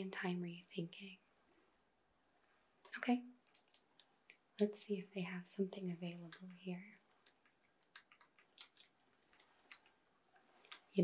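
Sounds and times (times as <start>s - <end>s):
computer keyboard keystrokes: 3.4s - 3.8s, 6.1s - 9.9s.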